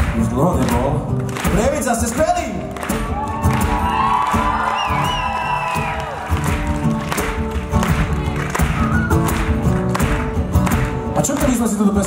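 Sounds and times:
live band with electric guitars: 0.0 - 12.0
crowd cheering: 1.4 - 12.0.

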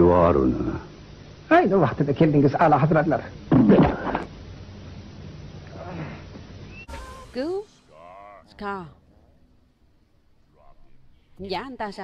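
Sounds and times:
cartoon soundtrack: 6.9 - 7.8.

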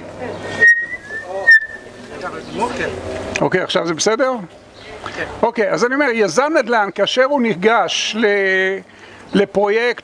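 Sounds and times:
microphone feedback whistle: 0.5 - 1.9.

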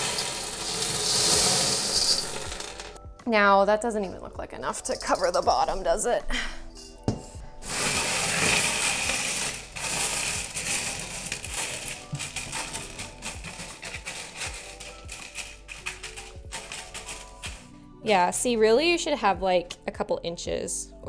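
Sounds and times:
clay pebbles rattling on glass: 0.0 - 3.0, 8.2 - 17.7
soft background music: 0.0 - 21.0.

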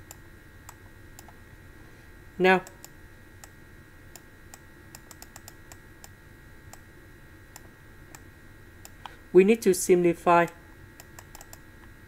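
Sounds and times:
faint electronic whine: 0.0 - 12.0
faint small clicks: 11.0 - 12.0.

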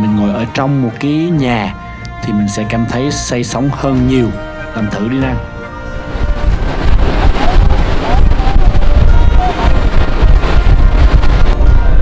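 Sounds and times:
churning wake rushing: 3.7 - 12.0
wind buffeting microphone: 3.7 - 12.0.

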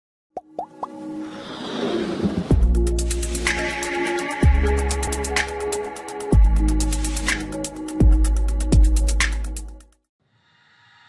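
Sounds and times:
intro music: 2.4 - 9.9.

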